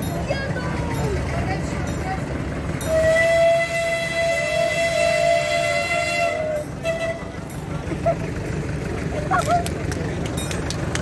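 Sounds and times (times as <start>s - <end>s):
locomotive whistle blasts: 2.8s - 7.4s.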